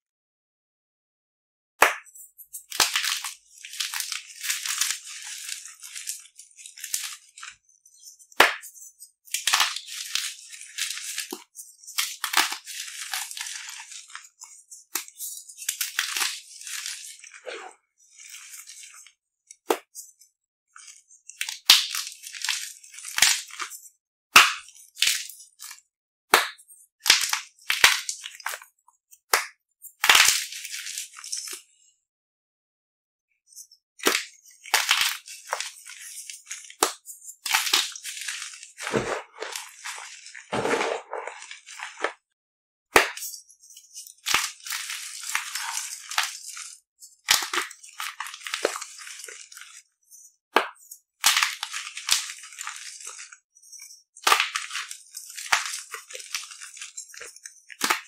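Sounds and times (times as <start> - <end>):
chalk crunching and crumbling: 2.0 - 19.1, 20.8 - 23.9, 30.1 - 31.6, 33.6 - 42.2, 43.0 - 58.0.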